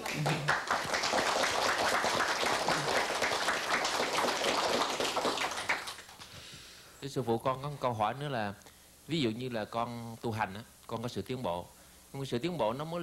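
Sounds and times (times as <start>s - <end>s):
audience applauding: 0.0s - 6.3s.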